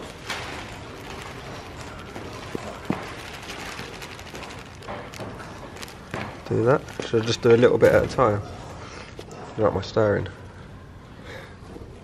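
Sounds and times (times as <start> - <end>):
plastic bag rustling and crinkling: 0.0 - 8.4.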